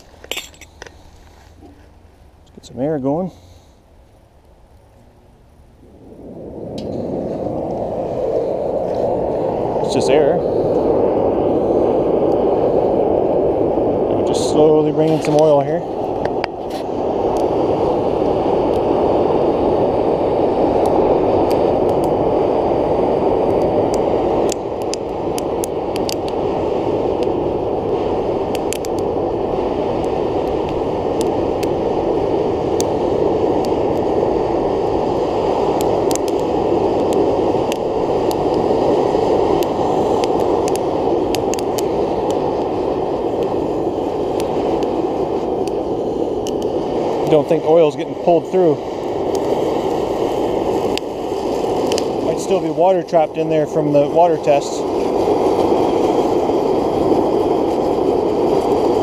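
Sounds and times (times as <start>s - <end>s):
blower air rushing: 0.0s - 59.0s
burning wood crackling: 0.0s - 59.0s.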